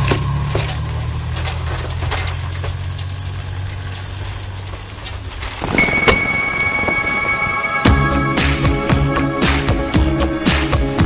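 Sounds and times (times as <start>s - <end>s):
pickup engine rumbling: 0.0s - 11.0s
music: 5.8s - 11.0s.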